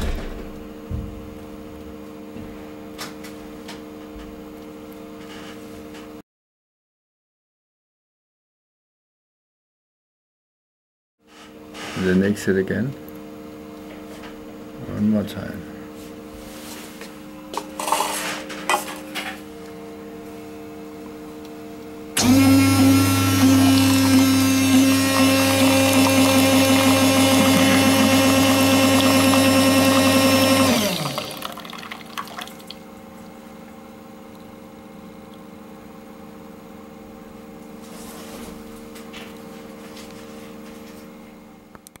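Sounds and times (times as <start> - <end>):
coffee machine pump: 22.2 - 35.4
water pouring into a cup: 22.8 - 32.9.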